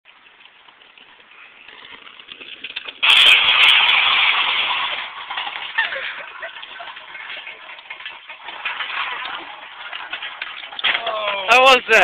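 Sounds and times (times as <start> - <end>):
scooter wheels rolling on pavement: 0.1 - 12.0
cans clattering: 3.0 - 12.0
crash into drink cans: 3.0 - 12.0.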